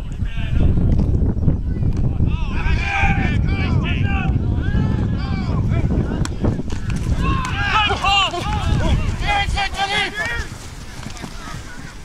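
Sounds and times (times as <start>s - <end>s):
wind rumbling on microphone: 0.0s - 12.0s
people shouting: 2.2s - 5.6s, 6.8s - 10.6s.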